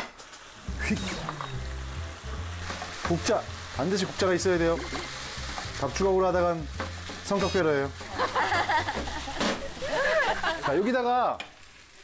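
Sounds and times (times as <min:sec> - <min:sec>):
food sizzling in a frying pan: 0:00.0 - 0:12.0
background music: 0:00.5 - 0:10.8.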